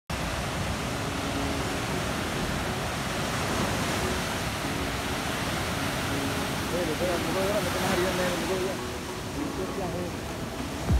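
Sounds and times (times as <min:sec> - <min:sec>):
ocean surf rushing: 0:00.1 - 0:10.9.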